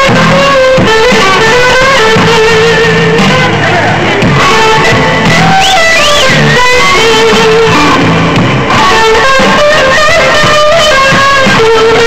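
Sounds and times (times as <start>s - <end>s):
electric guitar blues solo: 0.0s - 12.0s.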